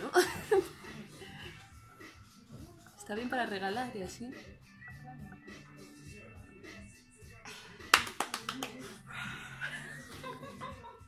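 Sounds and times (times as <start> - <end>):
hand claps: 7.8 - 9.0.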